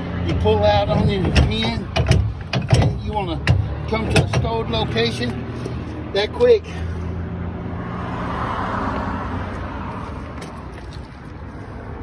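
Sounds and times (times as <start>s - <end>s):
road noise rush: 0.0s - 12.0s.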